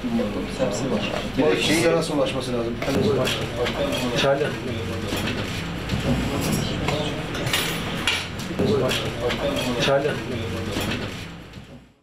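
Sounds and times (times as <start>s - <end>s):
dishes and cutlery clinking: 5.0s - 10.0s.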